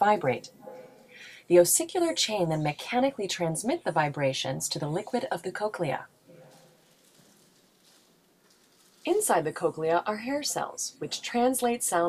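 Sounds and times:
person narrating: 0:00.0 - 0:00.6, 0:01.2 - 0:06.6, 0:09.1 - 0:12.0.

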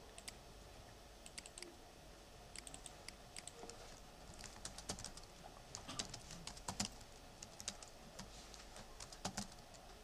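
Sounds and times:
typing on computer keyboard: 0:02.6 - 0:03.7, 0:04.3 - 0:08.3, 0:09.0 - 0:09.8.

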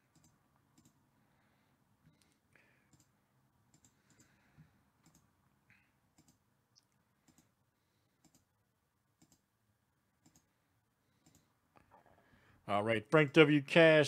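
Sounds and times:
computer mouse clicks: 0:00.0 - 0:01.0, 0:02.0 - 0:04.4, 0:05.0 - 0:05.3, 0:06.1 - 0:07.6, 0:08.2 - 0:08.5, 0:09.2 - 0:09.5, 0:10.2 - 0:11.9.

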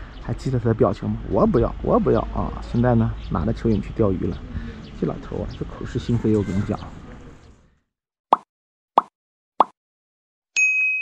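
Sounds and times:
bright ding: 0:10.6 - 0:11.0.

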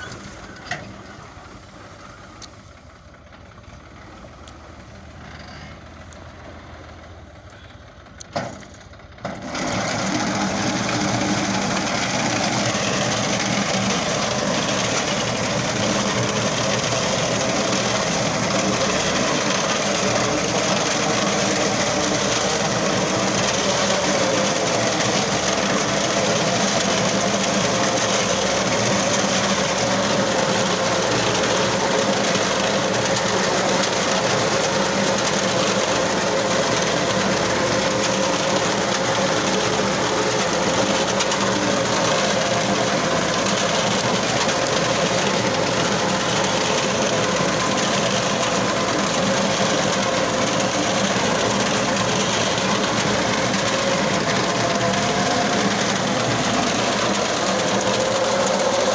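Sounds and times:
diesel tractor engine: 0:00.0 - 0:58.9.

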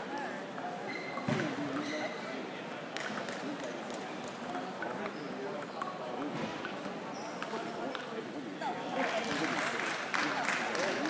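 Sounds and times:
table tennis ball clicking: 0:02.7 - 0:06.3.

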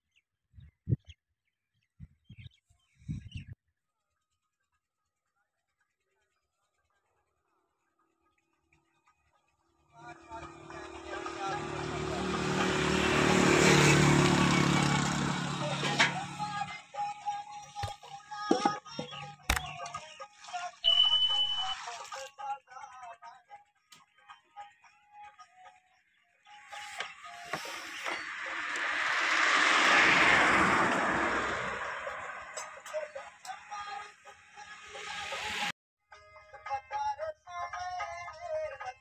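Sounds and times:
swelling whoosh: 0:27.7 - 0:32.8.

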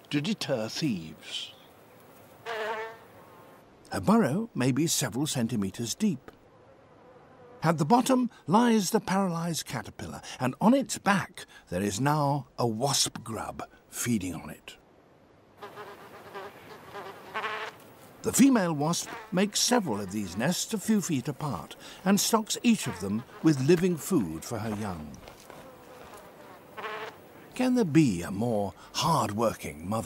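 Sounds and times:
wasp buzzing: 0:02.0 - 0:03.6, 0:15.6 - 0:17.9, 0:18.9 - 0:20.1, 0:21.7 - 0:27.5.

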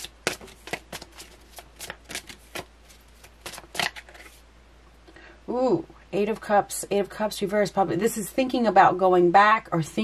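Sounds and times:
cards being shuffled: 0:00.0 - 0:04.4.

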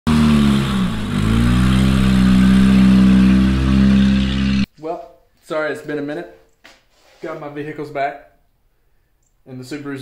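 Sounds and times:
car engine at high revs: 0:00.1 - 0:04.7.

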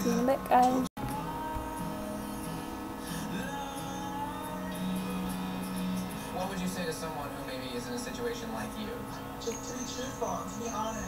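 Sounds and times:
background music from television: 0:00.0 - 0:11.0.

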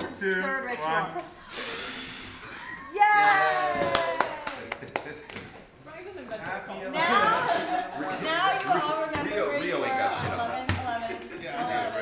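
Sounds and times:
people blowing out candles: 0:01.5 - 0:02.8
people cheering: 0:02.8 - 0:05.2
people clapping: 0:03.3 - 0:05.6.

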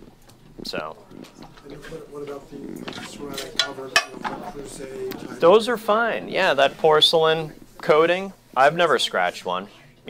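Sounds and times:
murmur of people talking: 0:00.6 - 0:08.6
metal cookware clattering: 0:02.9 - 0:04.4.

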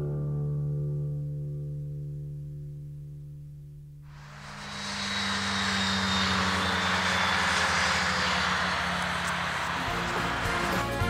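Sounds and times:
propeller aircraft engine droning: 0:04.1 - 0:11.0.

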